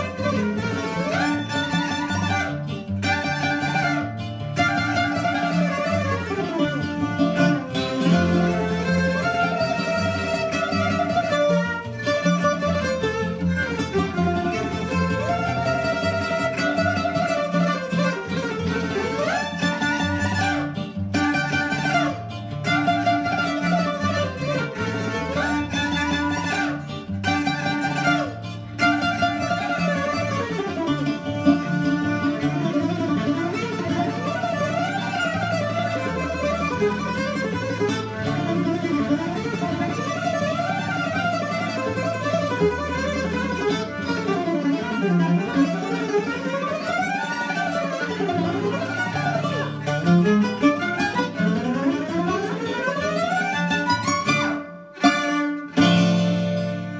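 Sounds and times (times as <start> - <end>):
bowed lyra melody: 0.0 - 56.9
plucked string accompaniment: 0.0 - 56.9.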